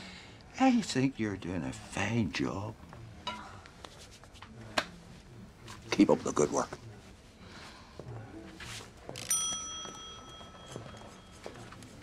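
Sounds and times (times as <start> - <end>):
bright bell ding: 9.3 - 11.3.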